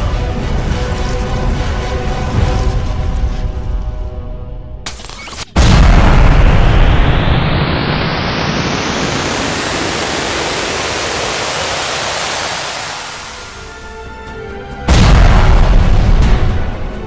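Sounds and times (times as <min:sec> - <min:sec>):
loud boom hit: 0:05.6 - 0:09.4, 0:14.9 - 0:16.9
rising noise whoosh: 0:06.1 - 0:13.7.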